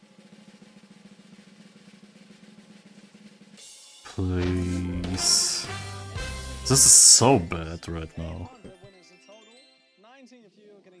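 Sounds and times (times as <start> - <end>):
fast drum roll: 0.0 - 3.7.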